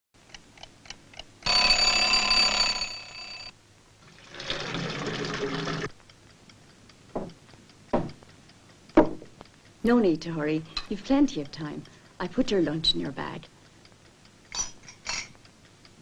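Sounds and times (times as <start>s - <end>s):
alarm clock ticking: 0.3s - 3.6s, 6.1s - 14.5s
alarm clock bell ringing: 1.4s - 3.6s.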